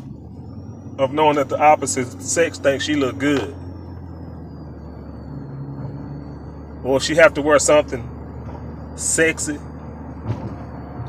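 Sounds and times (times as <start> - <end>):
car engine humming inside cabin: 0.0 - 11.0.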